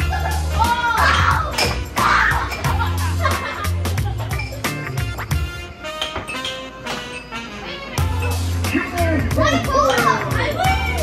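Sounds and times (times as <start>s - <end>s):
children shouting and squealing: 0.0s - 2.9s, 9.4s - 11.0s
music with heavy bass beat: 0.0s - 5.7s
air hockey play: 1.4s - 2.8s, 5.9s - 7.3s.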